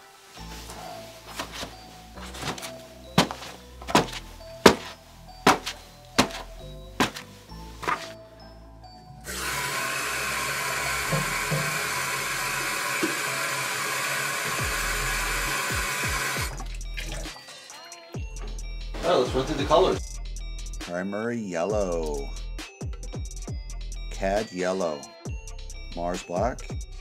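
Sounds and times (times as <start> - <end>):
sharp knocks: 5.5 - 6.4
tap water running into a jar: 9.3 - 17.4.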